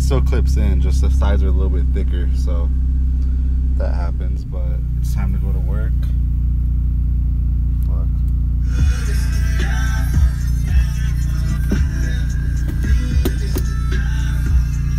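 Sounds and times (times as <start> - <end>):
car engine idling: 0.0 - 14.9
music with heavy bass beats: 8.4 - 14.9.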